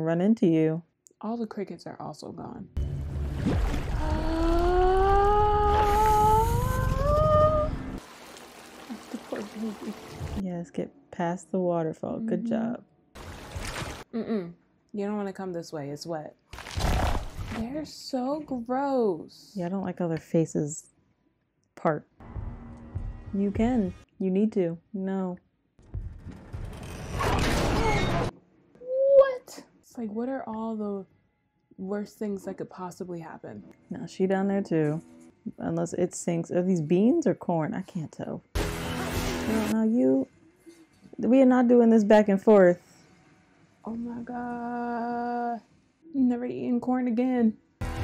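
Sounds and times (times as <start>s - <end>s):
low rumble: 2.8s - 8.0s.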